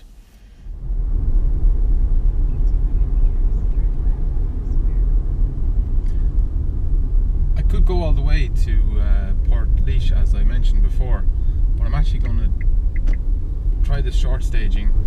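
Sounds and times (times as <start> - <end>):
road and tyre rumble in car: 0.0 - 15.0.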